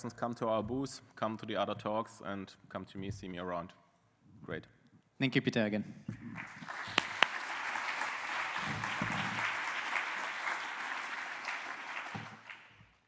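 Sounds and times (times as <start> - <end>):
audience applauding: 6.2 - 13.0.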